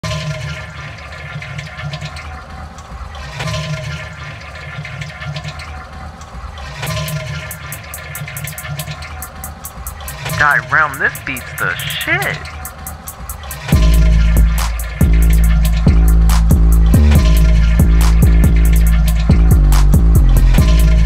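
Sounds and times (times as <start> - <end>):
looped toilet flush: 0.0 - 10.3, 12.6 - 21.0
hip-hop beat with bass: 13.8 - 21.0.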